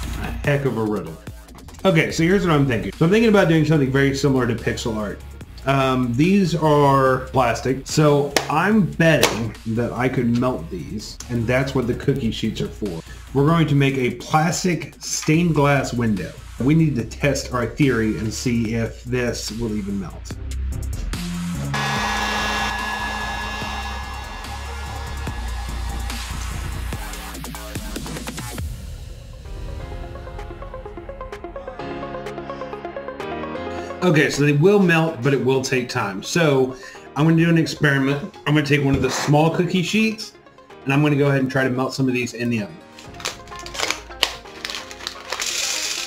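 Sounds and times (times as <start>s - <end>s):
heat gun blowing air: 21.8s - 27.0s
plastic bag crinkling: 42.9s - 46.0s
beads pouring onto metal sheet: 43.0s - 46.0s.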